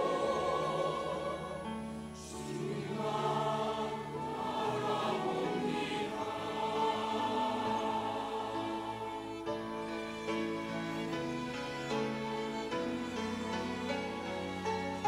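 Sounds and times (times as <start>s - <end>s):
church choir singing in harmony: 0.0s - 15.0s
string ensemble playing: 0.0s - 15.0s.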